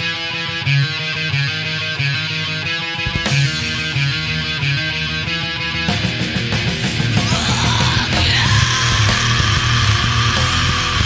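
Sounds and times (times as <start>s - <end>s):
distorted electric guitar: 0.0s - 11.0s
bass line: 3.1s - 11.0s.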